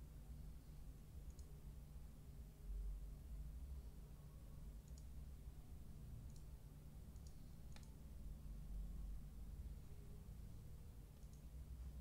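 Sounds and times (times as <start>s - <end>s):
steady low hum: 0.0s - 12.0s
mouse and keyboard clicks: 7.2s - 8.0s, 11.2s - 11.5s.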